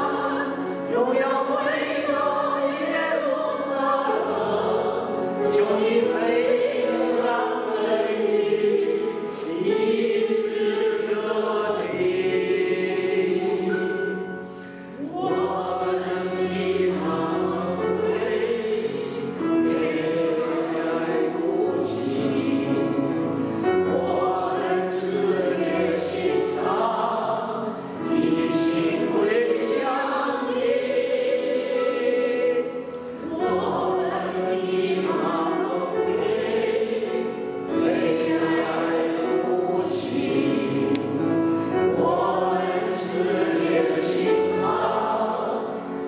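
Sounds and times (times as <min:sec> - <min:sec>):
group singing a hymn: 0:00.0 - 0:46.0.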